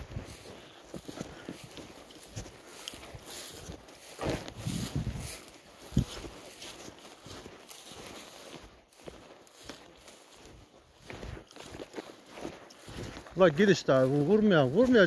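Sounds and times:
footsteps through dry grass: 0.0 - 15.0.

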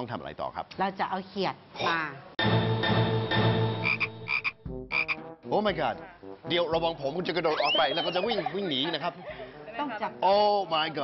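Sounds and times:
frog croaking: 3.8 - 5.2.

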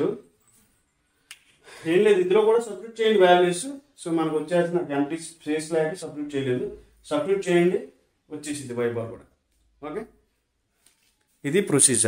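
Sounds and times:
man speaking: 0.0 - 0.3, 1.8 - 10.3, 11.4 - 12.0.

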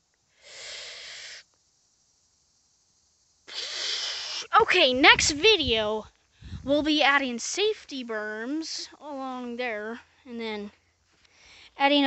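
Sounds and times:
short breathy hiss: 0.0 - 1.9, 3.4 - 4.6, 6.1 - 6.7, 10.0 - 11.8.

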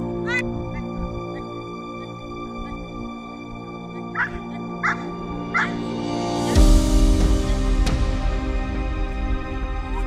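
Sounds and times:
background music: 0.0 - 10.0
dog barking: 4.0 - 5.8.

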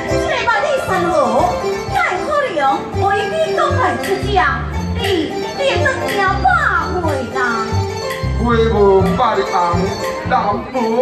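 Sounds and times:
band accompaniment: 0.0 - 11.0.

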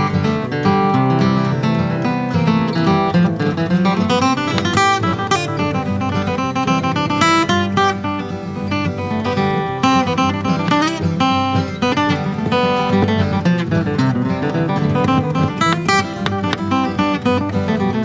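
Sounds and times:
flatpicked guitar melody: 0.0 - 18.0
strummed acoustic guitar: 0.0 - 18.0.

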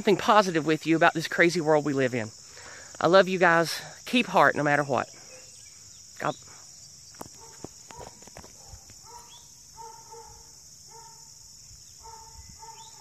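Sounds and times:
insects chirring: 0.0 - 13.0.

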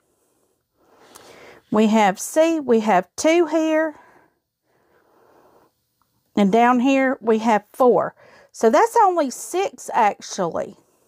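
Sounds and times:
faint breath: 0.0 - 1.8, 3.9 - 5.8, 8.2 - 8.6.

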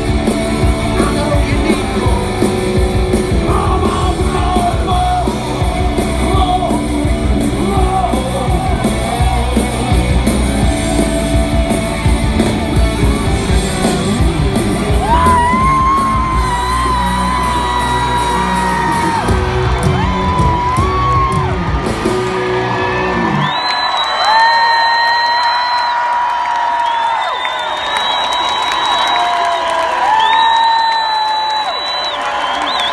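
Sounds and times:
live rock band playing: 0.0 - 23.6
crowd cheering: 0.0 - 32.9.

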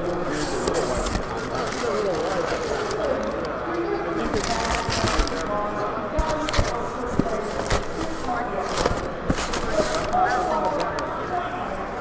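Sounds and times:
packing paper crinkling: 0.0 - 3.6, 4.2 - 11.1
chatter of many voices: 0.0 - 12.0
cardboard rustling: 0.2 - 3.4, 4.2 - 11.1.

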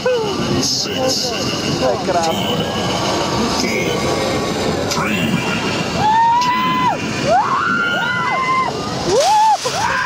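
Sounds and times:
riders screaming: 6.0 - 10.0.

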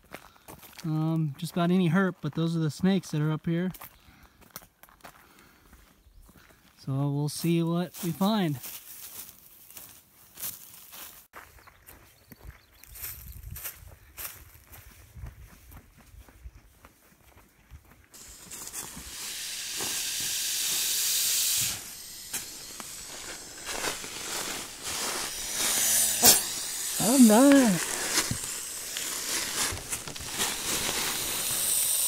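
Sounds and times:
snake hissing: 18.2 - 32.0.

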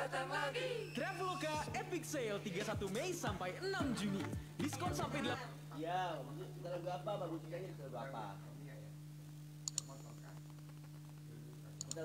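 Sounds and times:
steady low hum: 0.0 - 12.0
quick sharp clicks: 9.6 - 11.0.

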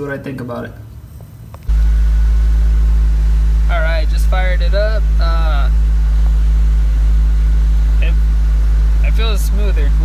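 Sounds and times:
car engine idling: 1.0 - 10.0.

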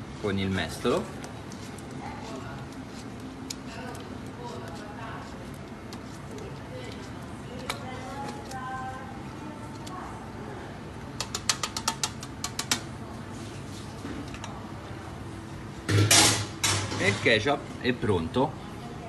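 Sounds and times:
ladle working sauce through sieve: 0.7 - 8.6.

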